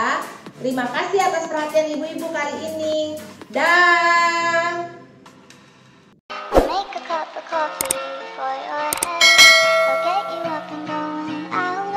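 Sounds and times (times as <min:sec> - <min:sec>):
light background music: 0:00.0 - 0:11.9
mouse click: 0:09.0 - 0:09.2
bell chime: 0:09.1 - 0:10.8.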